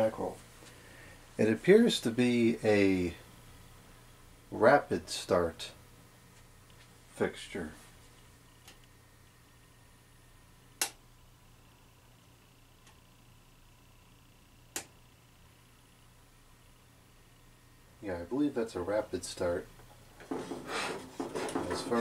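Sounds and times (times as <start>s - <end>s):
fluorescent light hum: 0.0s - 22.0s
sharp clicks: 10.8s - 11.0s, 14.7s - 15.0s.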